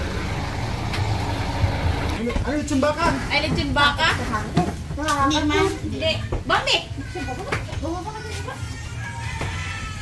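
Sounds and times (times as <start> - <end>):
car engine idling: 0.0 - 2.3.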